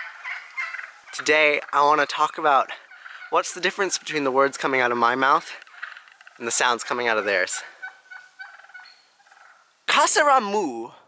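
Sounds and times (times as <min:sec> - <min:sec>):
turkeys clucking: 0:00.0 - 0:09.9.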